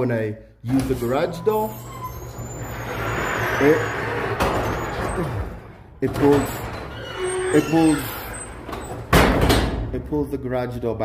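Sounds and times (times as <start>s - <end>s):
garage door opener running: 0.7s - 9.8s.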